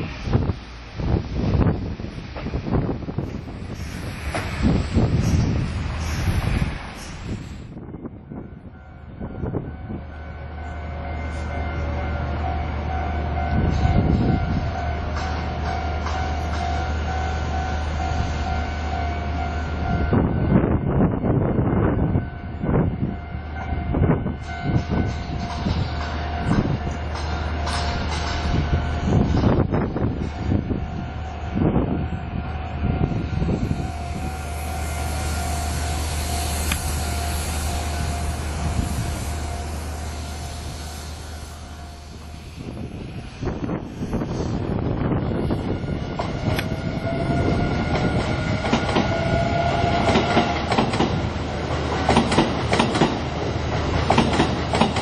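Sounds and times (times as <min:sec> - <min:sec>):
hiss of passing train cars: 0:00.0 - 0:55.0
level crossing warning bell: 0:08.4 - 0:20.5
train wheels clattering over rail joints: 0:24.7 - 0:30.4, 0:47.8 - 0:55.0.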